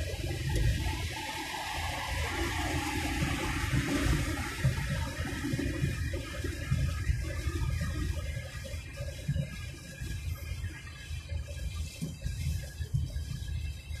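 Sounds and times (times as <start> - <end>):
road and tyre noise in car: 0.0 - 14.0.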